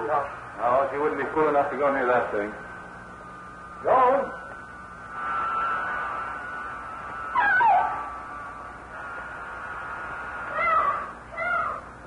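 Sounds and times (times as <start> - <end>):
faint steady high tone: 6.2 - 8.8
high-pitched cry of distress: 10.6 - 11.9.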